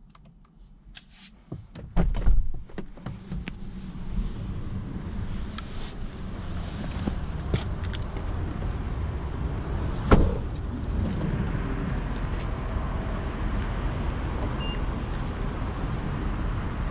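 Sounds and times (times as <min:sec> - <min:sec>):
low background rumble: 0:02.6 - 0:16.9
car door shutting thud: 0:10.0 - 0:10.5.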